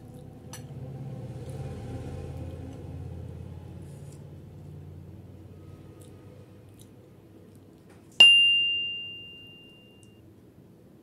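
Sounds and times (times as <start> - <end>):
bright notification ding: 8.2 - 10.0.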